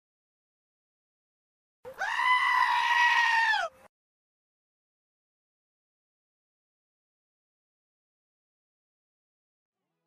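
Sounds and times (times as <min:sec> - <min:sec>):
long high-pitched cry: 0:01.9 - 0:03.8.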